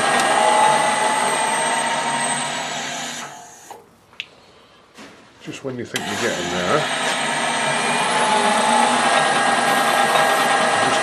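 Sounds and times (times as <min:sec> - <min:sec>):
metal lathe running: 0:00.0 - 0:03.4, 0:06.0 - 0:11.0.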